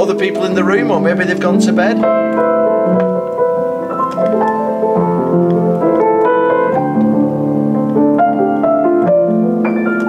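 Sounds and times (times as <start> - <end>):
softened upright piano chords: 0.0 - 10.0.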